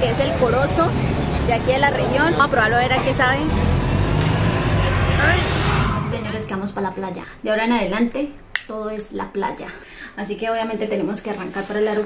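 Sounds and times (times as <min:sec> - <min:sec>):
vehicle engine rumbling: 0:00.0 - 0:07.5
brief rising vocal sound: 0:03.6 - 0:06.7.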